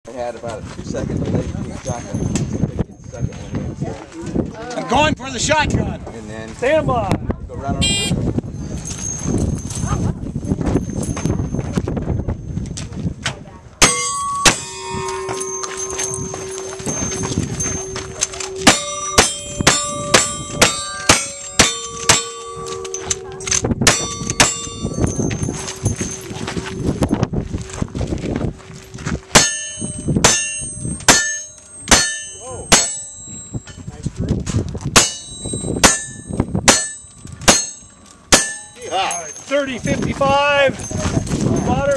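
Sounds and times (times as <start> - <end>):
steel targets ringing: 13.8 - 27.1, 29.3 - 33.8, 35.0 - 39.7.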